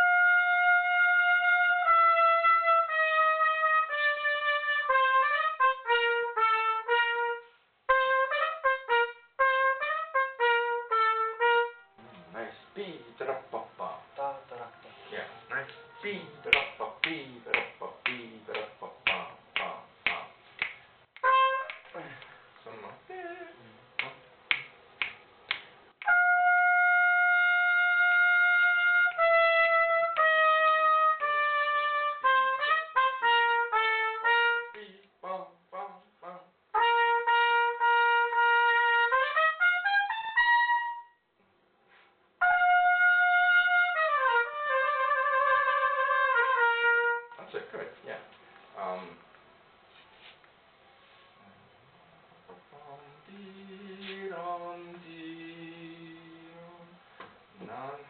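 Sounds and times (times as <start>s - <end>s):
trumpet playing: 0.0s - 17.5s, 21.2s - 22.0s, 26.0s - 34.8s, 36.7s - 41.3s, 42.4s - 47.4s.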